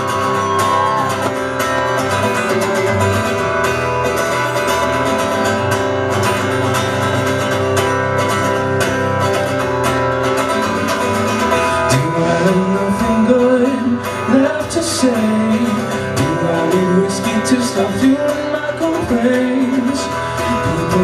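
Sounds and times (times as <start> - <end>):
acoustic guitar strumming: 0.0 - 21.0
person singing: 11.7 - 21.0.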